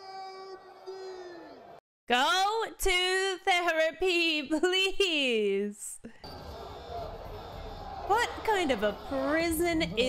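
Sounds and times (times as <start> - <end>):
crowd yelling indistinctly: 6.2 - 10.0.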